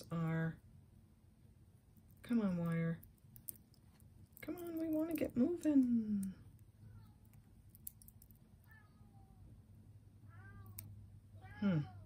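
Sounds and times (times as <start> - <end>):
faint low hum: 0.0 - 12.0
cat meowing softly: 8.6 - 9.5, 10.2 - 12.0.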